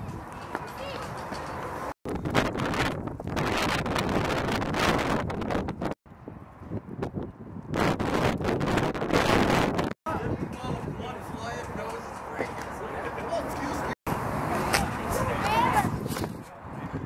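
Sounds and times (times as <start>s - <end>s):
wind buffeting microphone: 2.0s - 12.1s, 14.1s - 17.0s.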